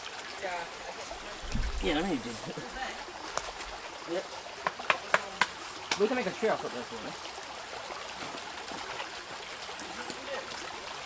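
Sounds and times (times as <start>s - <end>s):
small stream flowing: 0.0s - 11.0s
campfire crackling: 0.6s - 6.1s.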